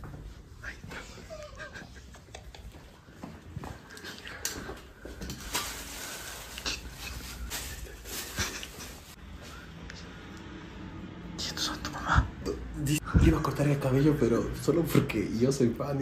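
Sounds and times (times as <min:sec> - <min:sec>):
plastic bag rustling: 0:04.8 - 0:09.2.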